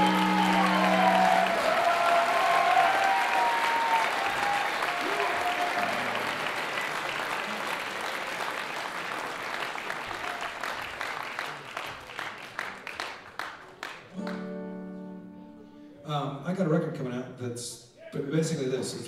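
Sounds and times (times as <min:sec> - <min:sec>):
audience shouting: 0:00.0 - 0:06.7
concert audience applauding: 0:00.0 - 0:14.9.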